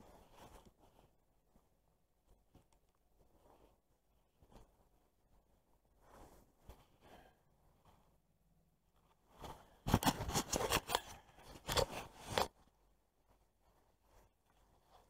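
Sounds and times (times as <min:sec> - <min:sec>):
rustling and scraping handling noise: 0:00.0 - 0:15.0.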